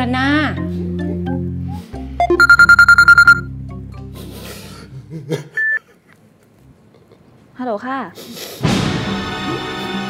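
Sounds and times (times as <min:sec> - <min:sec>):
mobile phone ringing trill: 0:02.4 - 0:03.5
short beep: 0:02.4 - 0:03.5
background music: 0:08.7 - 0:10.0.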